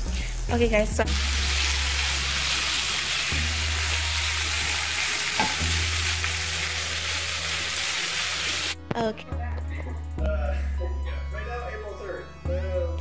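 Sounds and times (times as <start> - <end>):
vegetables and sausage sizzling: 0.0 - 8.8.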